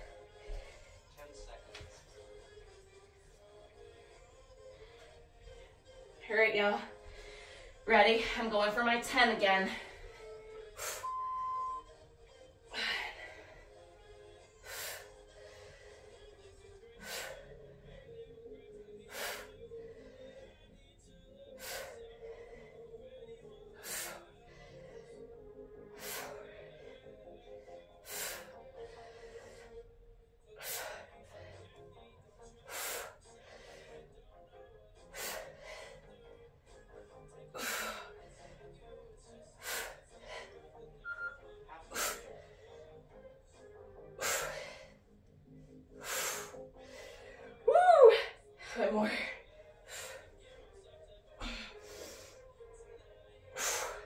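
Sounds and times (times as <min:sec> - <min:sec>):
faint background music: 0:00.0 - 0:54.0
woman breathing hard: 0:06.9 - 0:07.8, 0:09.7 - 0:11.8, 0:12.7 - 0:20.8, 0:21.5 - 0:30.0, 0:35.0 - 0:38.7, 0:44.0 - 0:50.6, 0:51.4 - 0:52.6, 0:53.5 - 0:54.0.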